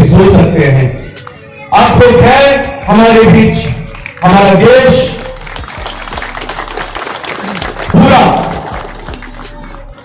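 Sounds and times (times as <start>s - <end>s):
background music: 0.0s - 10.0s
audience clapping: 3.6s - 10.0s.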